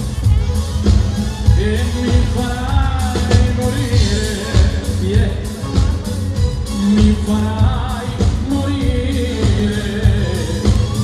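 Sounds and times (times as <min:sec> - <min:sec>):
drum kit: 0:00.0 - 0:11.0
keyboards: 0:00.0 - 0:11.0
man singing into a microphone: 0:01.5 - 0:11.0.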